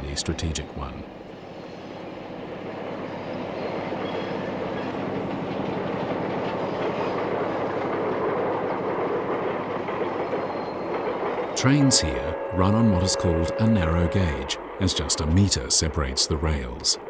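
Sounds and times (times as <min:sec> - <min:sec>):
train running: 0:00.0 - 0:17.0.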